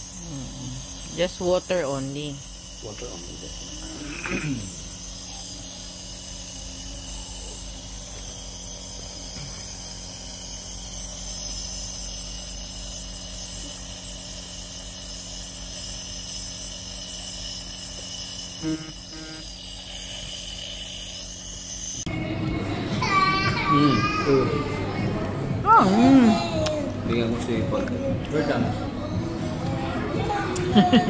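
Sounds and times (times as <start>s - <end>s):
nebulizer motor hum with hiss: 0.0s - 22.2s.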